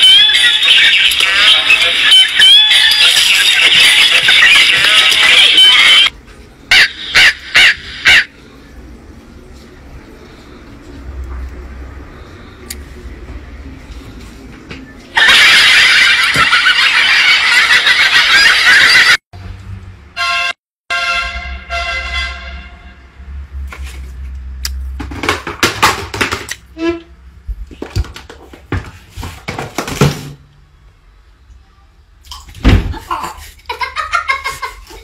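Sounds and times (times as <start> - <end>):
horn-like pitched tones: 20.2 - 23.3.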